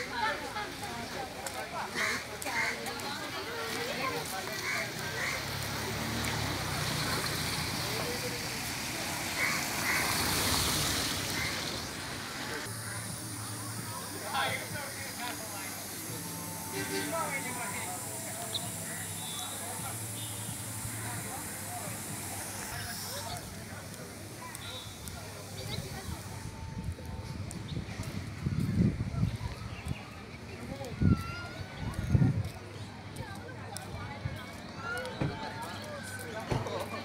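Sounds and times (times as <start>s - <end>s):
people talking: 0.0s - 37.0s
steady background noise: 0.0s - 37.0s
hiss: 5.5s - 26.5s.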